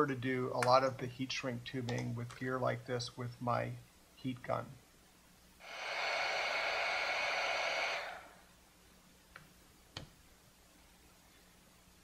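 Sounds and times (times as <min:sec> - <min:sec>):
heat gun blowing: 0:05.6 - 0:08.5.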